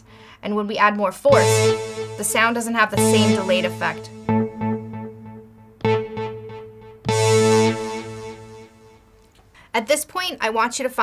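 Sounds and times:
loud held synth note: 1.3s - 9.0s
synth lead notes with echo: 1.3s - 9.2s.

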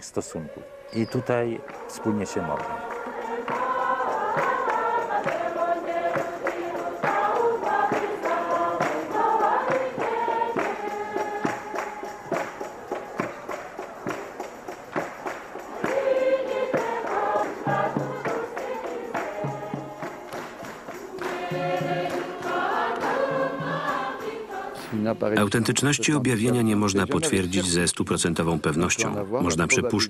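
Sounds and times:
choir singing: 0.0s - 27.2s, 28.6s - 30.0s
percussive beat: 1.6s - 27.2s.

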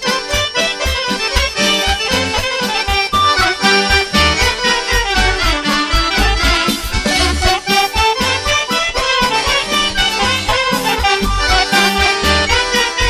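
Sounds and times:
accordion folk melody: 0.0s - 13.0s
steady bass beat: 0.0s - 13.0s.

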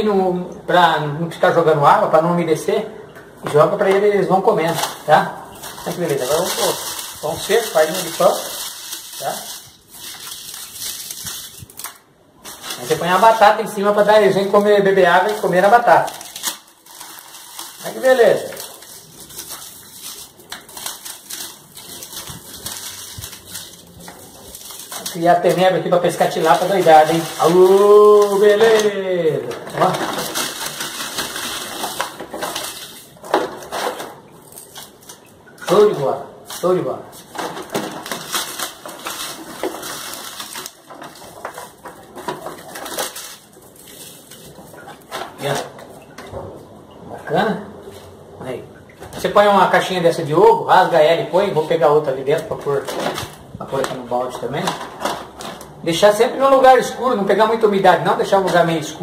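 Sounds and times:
hands crunching dry feed: 5.6s - 29.2s.

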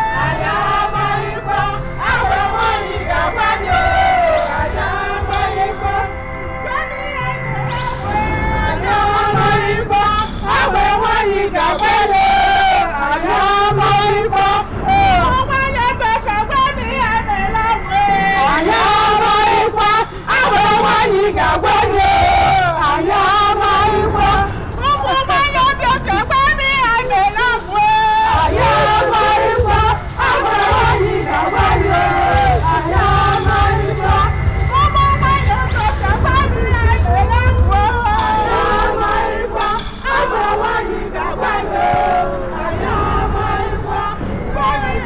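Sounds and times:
low repeated drumming: 0.0s - 6.8s, 7.6s - 45.0s
women chanting together: 0.0s - 45.0s
women singing in high voices: 0.0s - 45.0s.

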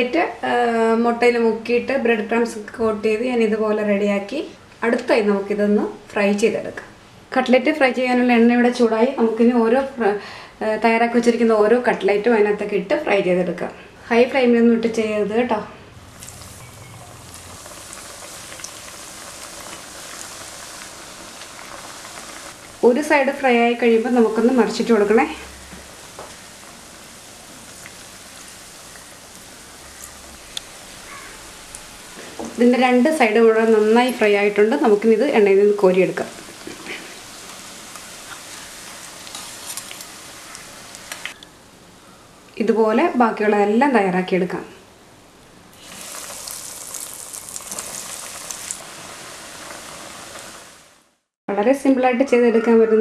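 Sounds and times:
oil popping: 16.1s - 22.8s, 24.7s - 32.6s, 45.7s - 50.6s
chicken deep-frying in oil: 16.1s - 41.4s, 45.7s - 51.1s.

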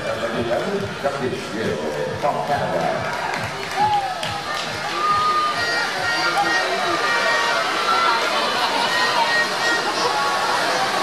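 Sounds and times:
crowd shouting and chattering: 0.0s - 11.0s.

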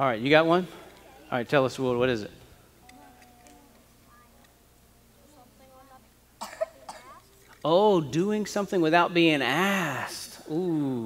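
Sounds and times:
person coughing: 6.4s - 7.2s.

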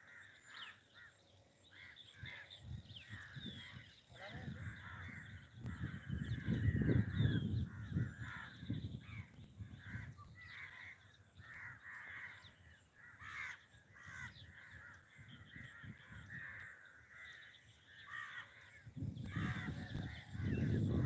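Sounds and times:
crows cawing: 0.0s - 21.0s.

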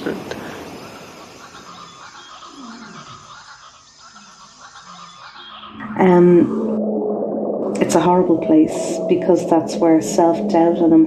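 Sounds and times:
steady hiss: 0.0s - 5.1s
slow gliding low tones: 5.8s - 11.0s.

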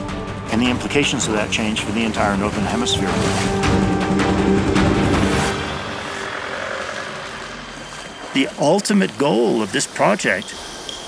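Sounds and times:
water washing: 0.4s - 11.0s
motorbike engines running: 1.6s - 11.0s.

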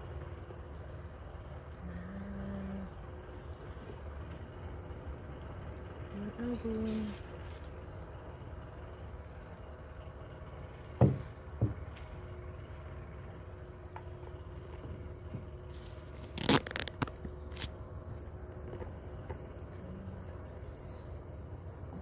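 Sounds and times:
person humming: 1.8s - 3.0s.

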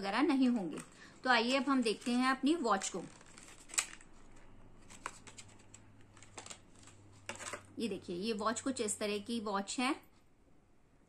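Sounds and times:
light clicks of packaging handled: 2.8s - 7.7s.

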